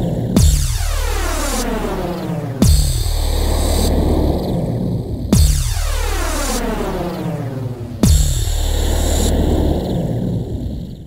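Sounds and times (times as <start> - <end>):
noisy synth layer: 0.0 - 10.1
steady low bass: 0.0 - 10.6
kick drum hits: 0.4 - 1.1, 2.6 - 3.2, 5.4 - 6.1, 8.0 - 8.6.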